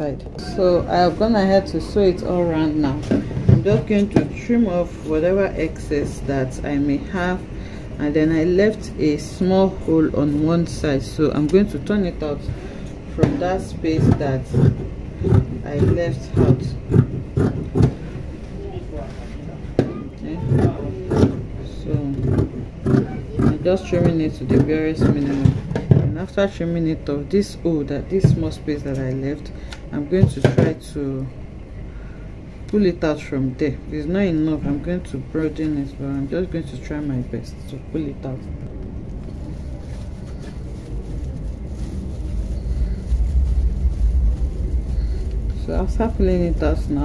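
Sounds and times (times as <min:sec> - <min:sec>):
low background rumble: 0:00.0 - 0:47.0
person talking: 0:15.3 - 0:16.8, 0:45.5 - 0:47.0.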